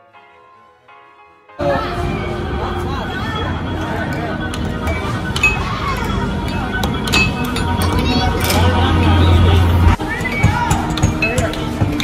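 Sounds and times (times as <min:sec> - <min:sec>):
air hockey table blower hum: 0:01.6 - 0:12.0
arcade background music: 0:01.6 - 0:12.0
voices: 0:01.6 - 0:12.0.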